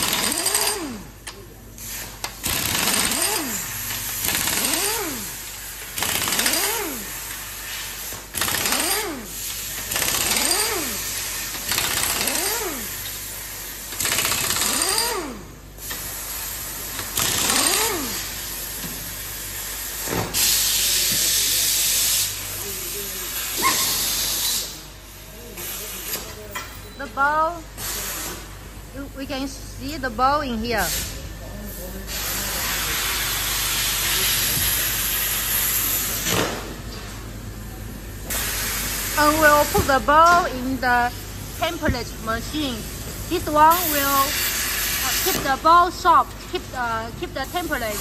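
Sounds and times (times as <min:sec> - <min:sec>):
air impact wrench bursts: 0:00.0 - 0:26.3, 0:27.7 - 0:28.7, 0:30.8 - 0:31.3, 0:32.0 - 0:37.1, 0:38.2 - 0:48.0.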